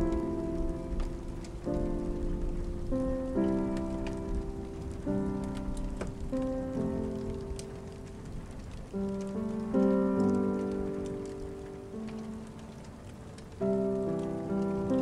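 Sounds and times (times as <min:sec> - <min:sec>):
gentle instrumental music: 0:00.0 - 0:15.0
sharp drips: 0:00.0 - 0:15.0
steady rain: 0:00.0 - 0:15.0.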